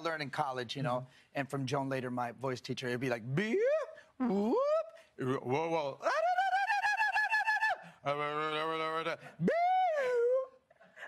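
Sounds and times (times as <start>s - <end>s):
man doing vocal warm-ups: 3.3s - 10.8s.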